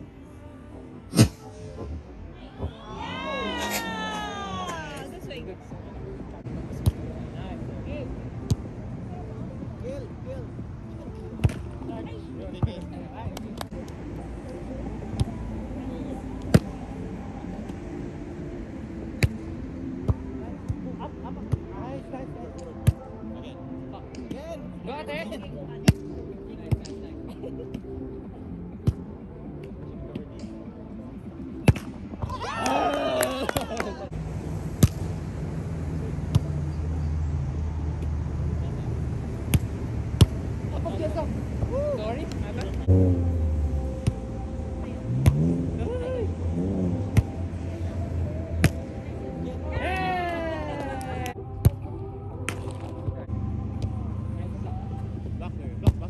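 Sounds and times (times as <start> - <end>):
murmur of distant voices: 0.0 - 56.0.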